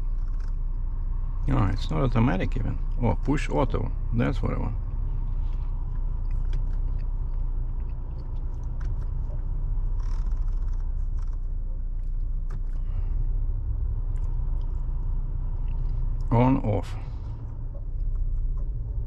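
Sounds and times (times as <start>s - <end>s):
car engine idling: 0.0s - 19.0s.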